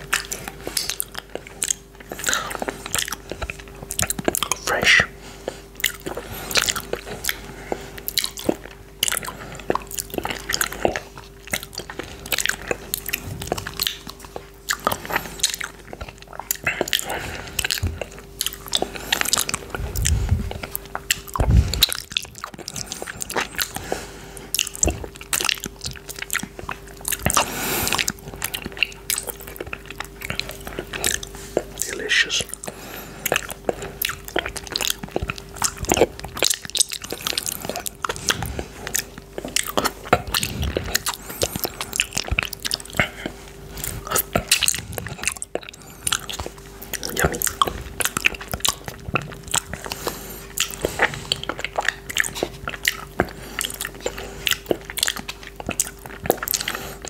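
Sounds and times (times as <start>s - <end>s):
faint steady hum: 0.0s - 57.0s
wet mouth sounds licking fingers: 0.0s - 57.0s.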